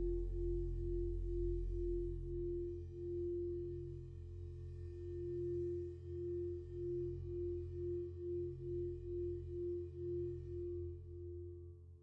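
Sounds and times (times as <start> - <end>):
dark ambient music drone: 0.0 - 11.1.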